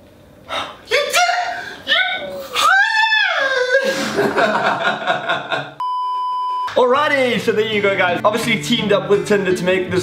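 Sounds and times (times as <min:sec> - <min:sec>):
people laughing: 0:03.6 - 0:05.8
electronic bleep tone: 0:05.8 - 0:06.7
people talking: 0:06.7 - 0:10.0
guitar music: 0:07.3 - 0:10.0.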